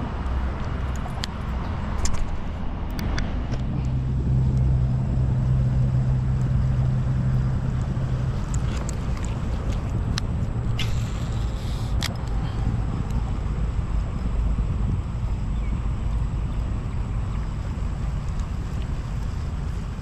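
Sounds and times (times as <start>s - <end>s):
low engine drone: 0.0s - 20.0s.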